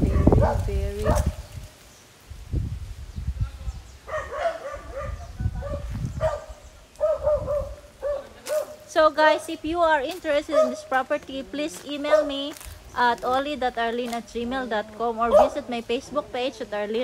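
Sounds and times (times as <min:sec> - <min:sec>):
dog yipping: 0:04.1 - 0:08.8, 0:10.5 - 0:10.8.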